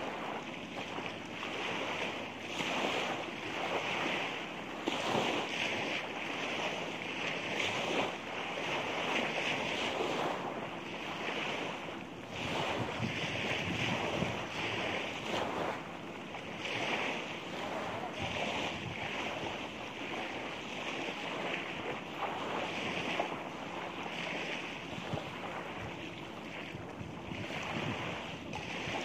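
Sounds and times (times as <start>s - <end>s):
surf washing on beach: 0.0s - 29.0s
wind buffeting microphone: 0.0s - 29.0s.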